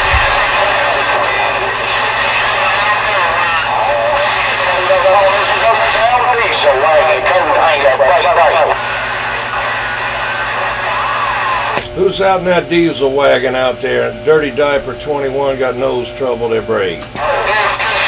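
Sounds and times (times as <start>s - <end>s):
faint radio voices: 0.0s - 18.0s
radio static and hum: 0.0s - 18.0s.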